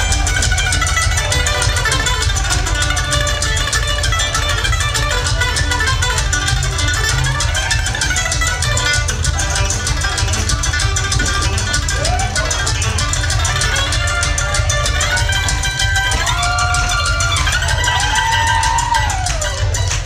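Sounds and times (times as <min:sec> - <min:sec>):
banjo picking: 0:00.0 - 0:20.0
bluegrass band playing: 0:00.0 - 0:20.0
mandolin picking: 0:00.0 - 0:20.0
steady bass line: 0:00.0 - 0:20.0.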